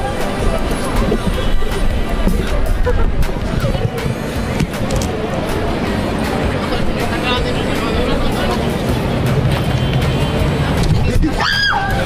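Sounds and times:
crowd chatter: 0.0 - 12.0
low rumble of traffic: 0.0 - 12.0.

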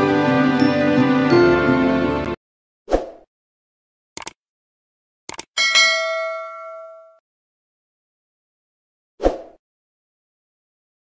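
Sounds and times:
bright bell ding: 5.6 - 7.2.

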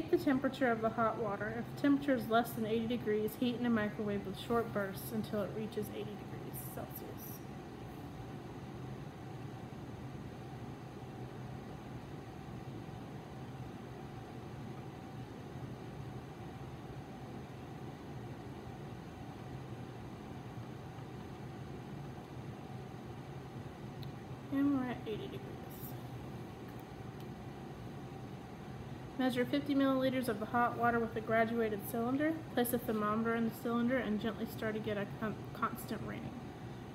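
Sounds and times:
room hum with faint hiss: 0.0 - 36.9.

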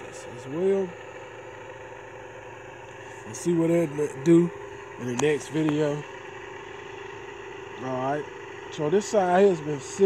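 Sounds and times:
engine idling: 0.0 - 10.0.

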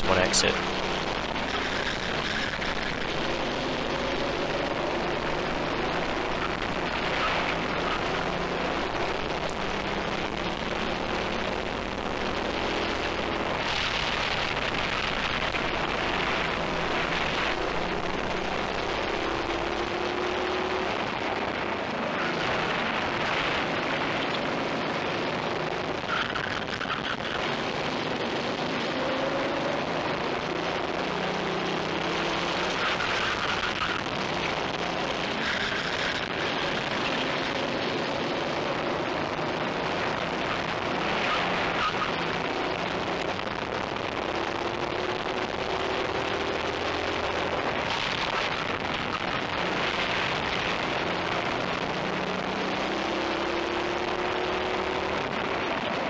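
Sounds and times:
kart engine: 0.0 - 56.0
wind and road noise: 0.0 - 56.0.

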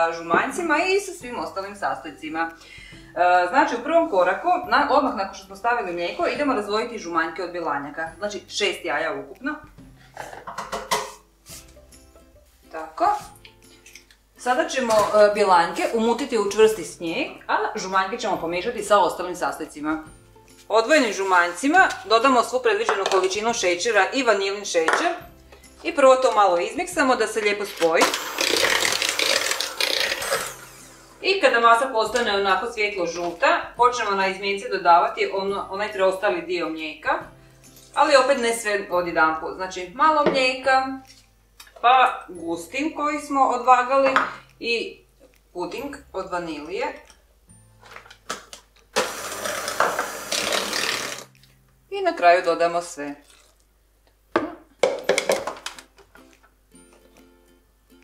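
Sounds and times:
electric hand mixer whirring: 28.0 - 31.2, 49.0 - 51.3.

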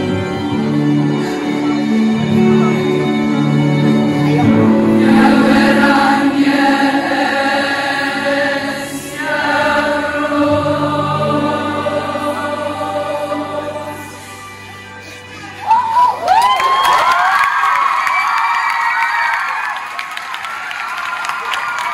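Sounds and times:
girls' choir singing chords: 4.4 - 15.6
crowd screaming and cheering: 14.6 - 21.9.

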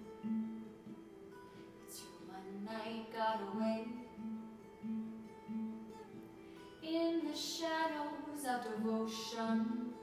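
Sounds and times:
acoustic guitar picking: 0.0 - 10.0
woman singing: 1.8 - 4.2, 6.8 - 10.0.

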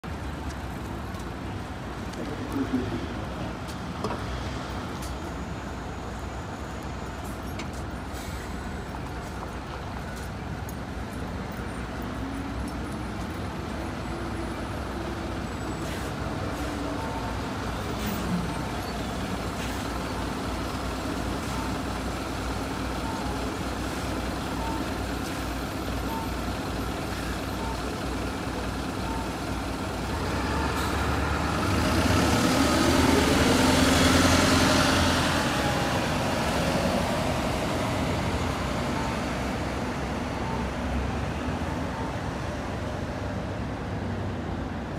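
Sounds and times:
bus diesel engine rumbling: 0.0 - 44.9
short beeps: 29.0 - 29.4.

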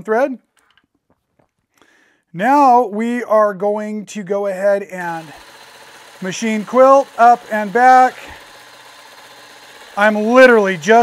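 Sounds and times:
man speaking: 0.0 - 0.4, 2.4 - 5.3, 6.2 - 8.4, 10.0 - 11.0
quilting machine humming: 5.0 - 11.0.

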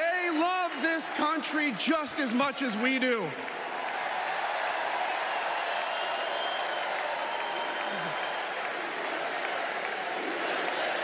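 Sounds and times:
crowd applauding: 0.0 - 11.0.

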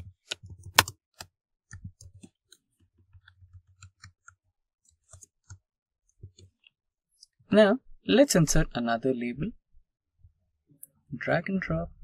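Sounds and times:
keyboard keystrokes: 0.2 - 2.6.

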